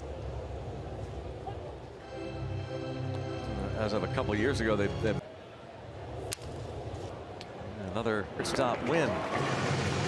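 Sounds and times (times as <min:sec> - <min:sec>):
stadium crowd murmur: 0:00.0 - 0:02.2
baseball bat crack: 0:06.2 - 0:06.7.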